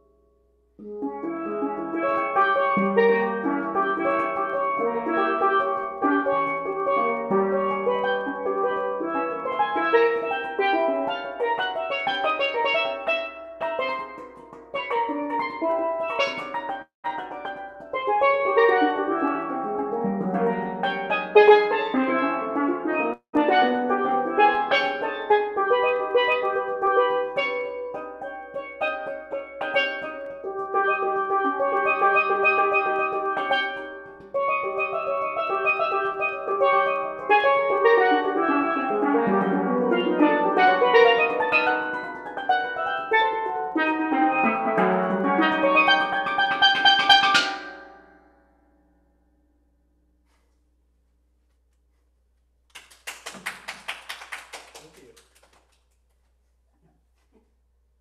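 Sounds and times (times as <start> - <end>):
steel pan music: 0.0 - 49.4.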